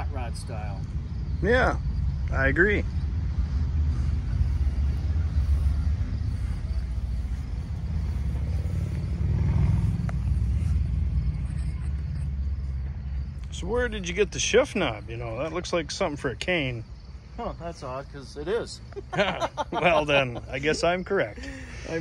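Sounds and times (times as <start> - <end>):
engine idling with low rumble: 0.0 - 22.0.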